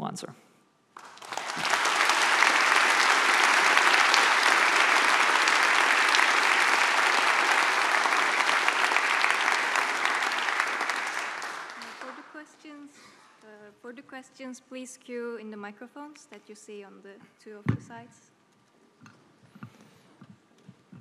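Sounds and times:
audience applauding: 0:01.0 - 0:12.4.

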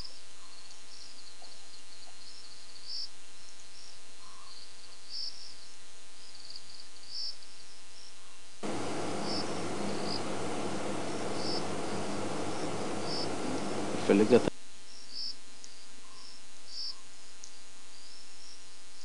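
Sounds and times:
crickets chirping: 0:00.0 - 0:19.0
steady hiss: 0:00.0 - 0:19.0.

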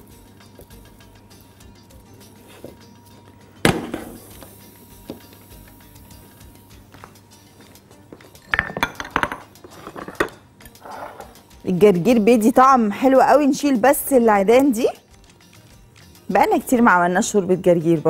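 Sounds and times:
faint background music: 0:00.0 - 0:18.0
kitchenware clinking: 0:08.4 - 0:11.4.

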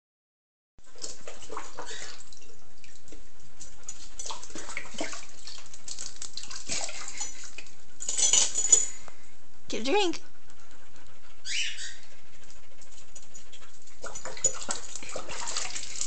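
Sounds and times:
puppy lapping and splashing water: 0:00.8 - 0:08.8, 0:11.5 - 0:16.0.

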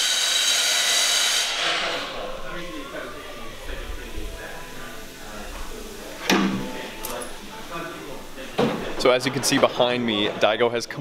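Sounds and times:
high-pitched hiss with whine: 0:00.0 - 0:11.0.

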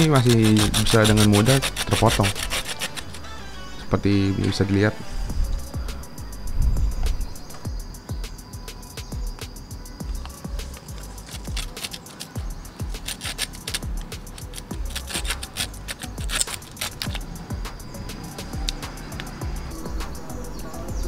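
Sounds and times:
saw rasping through bamboo: 0:00.0 - 0:03.4, 0:10.7 - 0:17.2
background music: 0:00.0 - 0:21.0.

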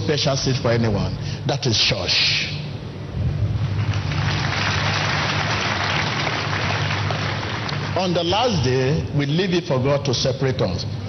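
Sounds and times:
steady low hum: 0:00.0 - 0:11.0
congregation applauding: 0:03.6 - 0:08.9.

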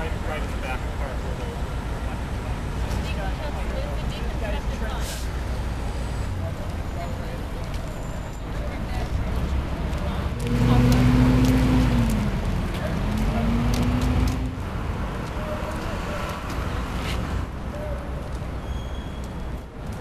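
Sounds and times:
city traffic noise: 0:00.0 - 0:20.0
large vehicle engine drone: 0:09.2 - 0:18.6.

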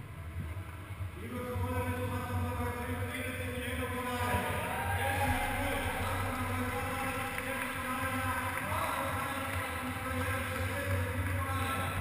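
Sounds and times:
low hall hum: 0:00.0 - 0:12.0.

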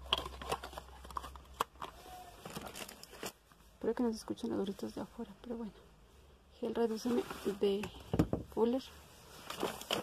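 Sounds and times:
plastic bottles clicking and knocking: 0:00.0 - 0:03.4
plastic packaging crinkling: 0:00.0 - 0:03.7, 0:09.4 - 0:10.0.

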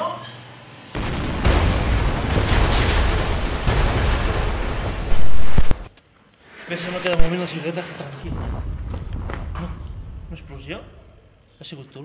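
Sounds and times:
deep rumbling: 0:01.0 - 0:05.9, 0:08.3 - 0:11.4
explosion blast: 0:01.0 - 0:05.9, 0:08.3 - 0:11.2
sharp cracks: 0:01.0 - 0:06.0.

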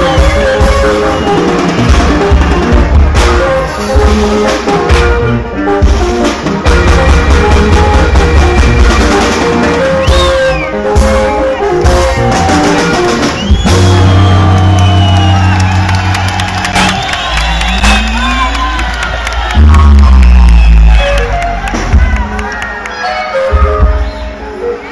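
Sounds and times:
crowd cheering and whooping: 0:00.0 - 0:03.7, 0:06.6 - 0:24.9
bass guitar notes: 0:00.0 - 0:22.5
live band music: 0:00.0 - 0:24.9.

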